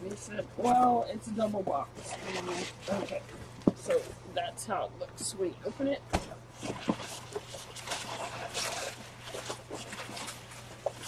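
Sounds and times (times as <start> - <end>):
packing paper rustling: 6.5 - 11.0.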